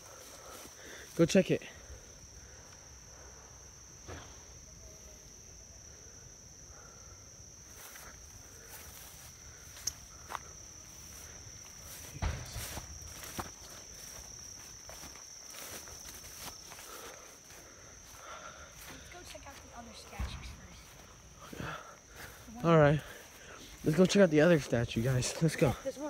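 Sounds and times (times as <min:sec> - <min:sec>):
insects droning: 0:00.0 - 0:26.0
footsteps through weeds and brush: 0:07.7 - 0:24.2.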